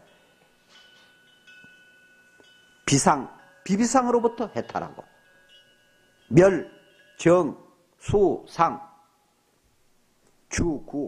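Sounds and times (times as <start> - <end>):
faint high chime tones: 0.0 - 9.4.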